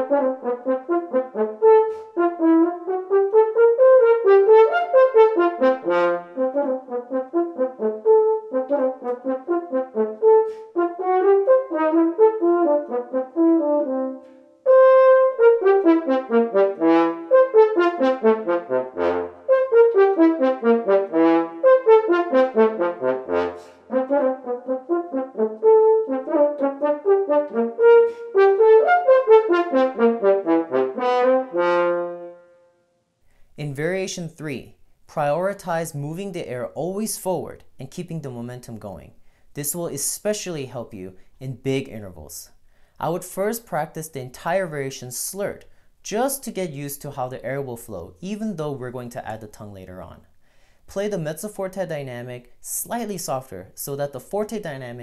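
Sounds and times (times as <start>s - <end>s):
french horn playing fast runs: 0.0s - 32.7s.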